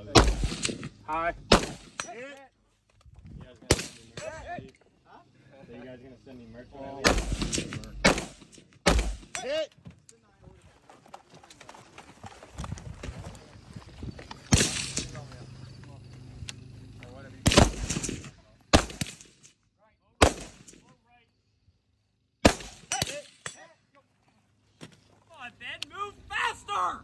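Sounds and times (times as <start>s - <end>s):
rifle gunshots: 0.0s - 2.1s, 3.7s - 4.3s, 7.0s - 9.4s, 14.5s - 15.2s, 17.4s - 19.4s, 20.2s - 20.8s, 22.4s - 23.5s.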